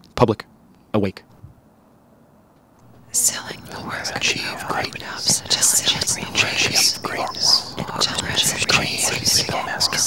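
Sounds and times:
quiet hiss: 0:00.5 - 0:10.0
person whispering rapidly: 0:02.9 - 0:10.0.

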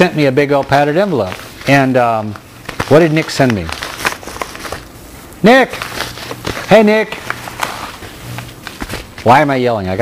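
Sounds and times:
low intermittent hum: 0:00.0 - 0:10.0
padded envelope rustling: 0:00.4 - 0:09.4.

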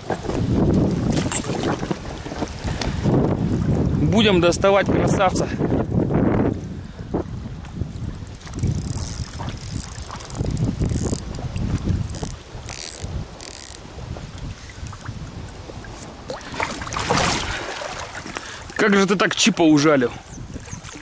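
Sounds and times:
fishing reel clicking and ratcheting: 0:08.0 - 0:13.8.

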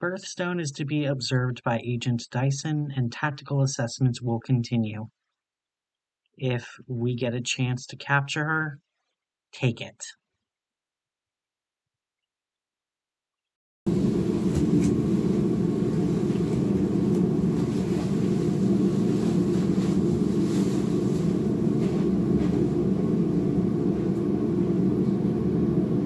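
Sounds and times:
steady low rumble: 0:13.9 - 0:26.0.

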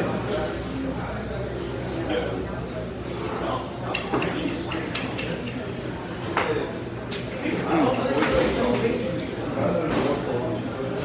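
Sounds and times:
murmur of voices: 0:00.0 - 0:11.0
dishes and cutlery clinking: 0:03.9 - 0:05.7, 0:07.2 - 0:08.7.

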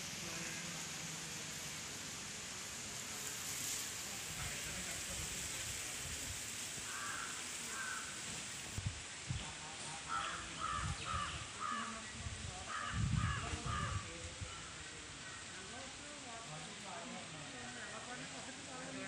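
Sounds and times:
steady hiss: 0:00.0 - 0:19.0
bird calling: 0:06.9 - 0:08.2.

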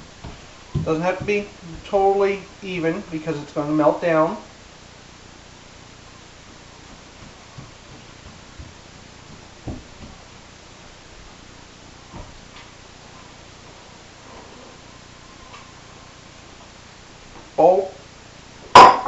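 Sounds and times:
room hiss: 0:00.0 - 0:19.0.

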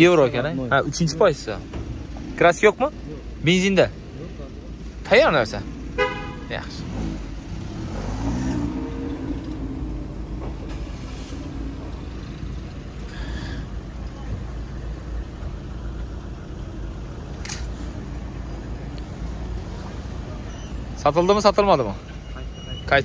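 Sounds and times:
traffic rumble: 0:00.0 - 0:23.0.

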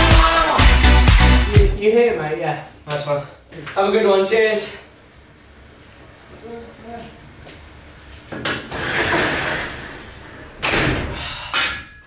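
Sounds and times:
garage door sliding: 0:08.4 - 0:11.4
garage door banging shut: 0:08.5 - 0:12.0.

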